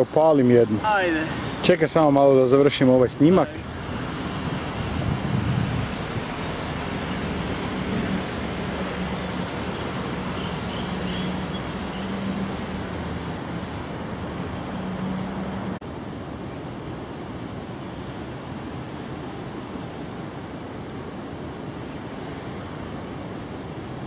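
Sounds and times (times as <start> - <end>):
distant city traffic: 0.0 - 24.0.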